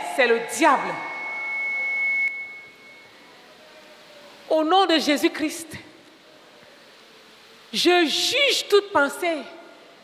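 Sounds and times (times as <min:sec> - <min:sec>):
microphone feedback ringing: 0:00.0 - 0:03.3.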